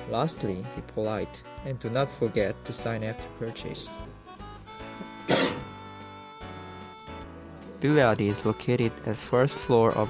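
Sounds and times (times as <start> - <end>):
background music: 0.0 - 10.0
person coughing: 5.3 - 5.7.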